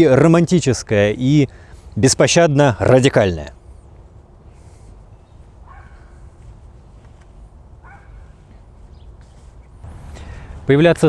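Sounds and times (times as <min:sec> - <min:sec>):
low outdoor rumble: 0:02.7 - 0:11.0.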